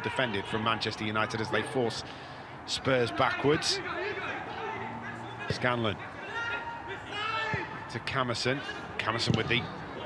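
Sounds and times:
footballers shouting: 0.0s - 10.0s.

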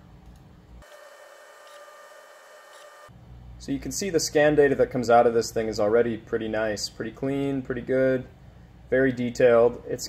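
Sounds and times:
faint room hum: 0.0s - 10.0s
faint electronic whine: 0.8s - 4.1s.

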